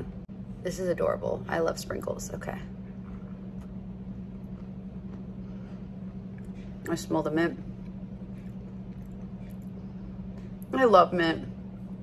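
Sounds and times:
steady low hum: 0.0s - 12.0s
cookie crunching: 3.0s - 6.6s.

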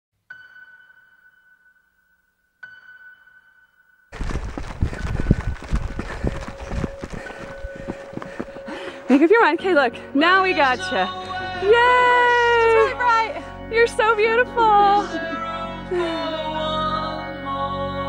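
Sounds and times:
footsteps running on dirt trail: 4.1s - 9.3s.

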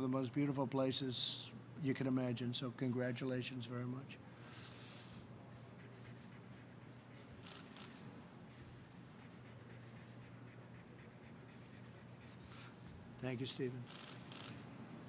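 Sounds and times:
low room hum: 0.0s - 15.0s
pen scratching on paper: 5.8s - 12.7s.

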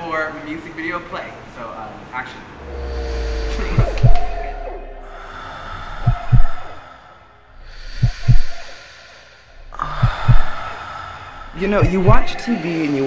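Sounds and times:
high sustained tone: 2.4s - 7.5s
deep heartbeat double thump: 3.0s - 5.2s, 6.0s - 6.7s, 8.0s - 8.6s, 9.6s - 10.6s, 11.8s - 12.4s.

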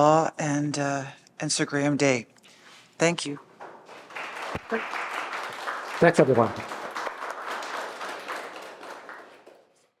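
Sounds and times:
audience applauding: 3.7s - 9.9s.

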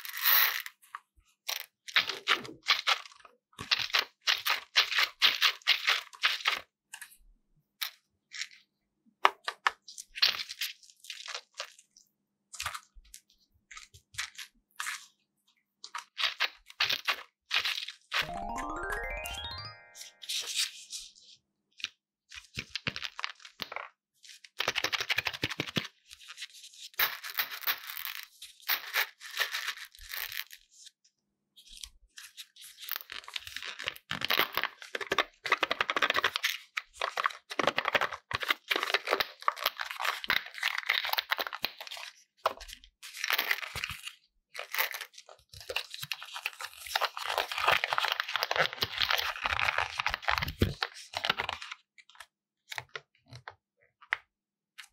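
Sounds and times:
foil wrapper tearing and crinkling: 37.1s - 42.0s, 43.1s - 51.7s.

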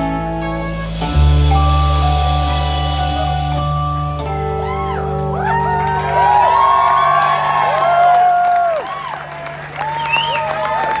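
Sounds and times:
band's low notes ringing: 0.0s - 6.0s
audience cheering and whooping: 4.4s - 11.0s.

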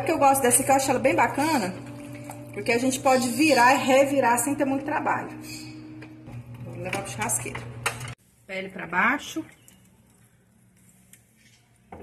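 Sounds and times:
low steady hum: 0.0s - 10.6s.

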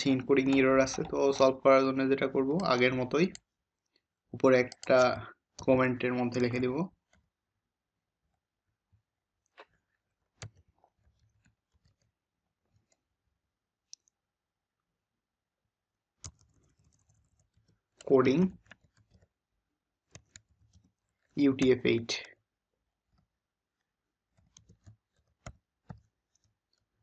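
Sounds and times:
keyboard keystrokes: 0.1s - 1.6s, 4.6s - 5.7s, 24.4s - 26.5s.

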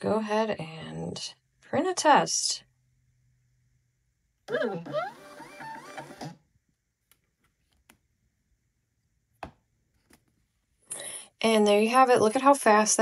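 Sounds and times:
label printer motor whine: 4.5s - 6.4s.

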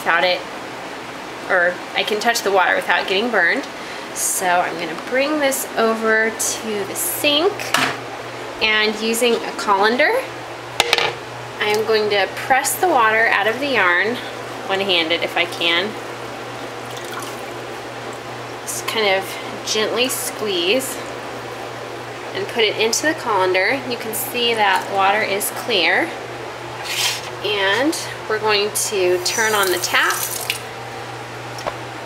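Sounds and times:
water dripping and trickling: 16.8s - 18.7s, 29.4s - 30.7s
tap water splashing into sink: 29.4s - 30.7s.

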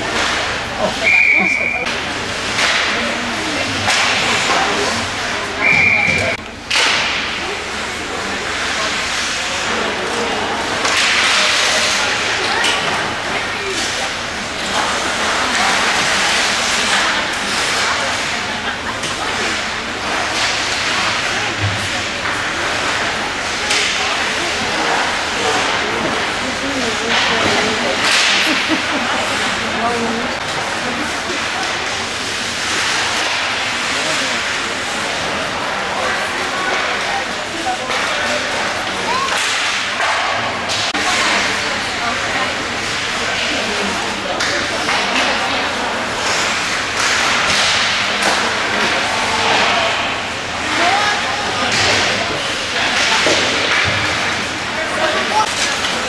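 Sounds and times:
hockey sticks and puck clattering: 0.0s - 56.0s
voices of players and spectators: 0.0s - 56.0s
referee's whistle blasts: 5.6s - 6.4s.

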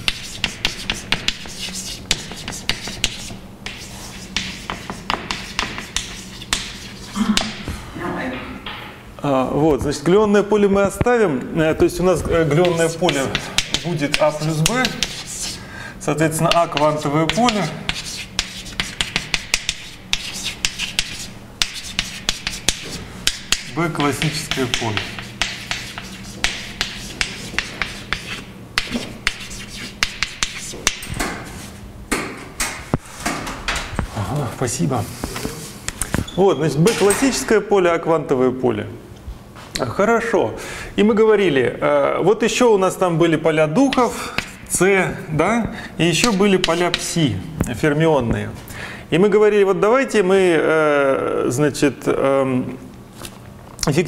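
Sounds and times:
chalk tapping and scraping: 0.0s - 7.7s, 12.3s - 15.6s, 16.4s - 31.8s, 46.2s - 47.2s.

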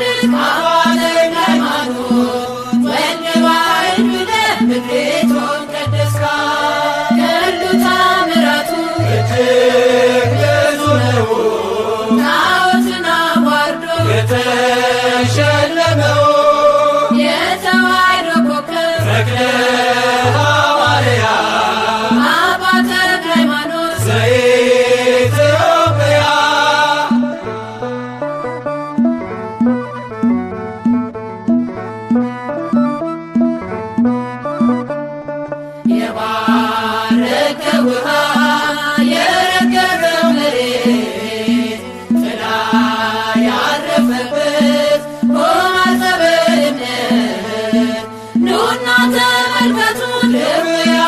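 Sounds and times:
person singing a hymn: 0.0s - 28.3s, 35.8s - 51.0s
instrumental backing with pulsing bass: 0.0s - 51.0s.

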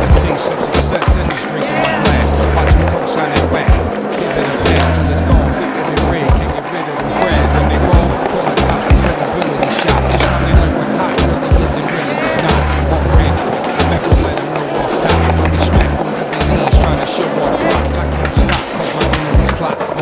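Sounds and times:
deep bass line: 0.0s - 3.9s, 4.6s - 9.2s, 9.9s - 11.8s, 12.4s - 14.4s, 15.1s - 17.0s, 17.6s - 19.6s
steady drum beat: 0.0s - 19.7s.

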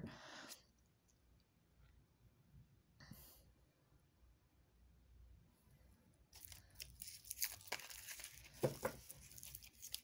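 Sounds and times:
dry crackling and rustling: 6.4s - 10.0s.

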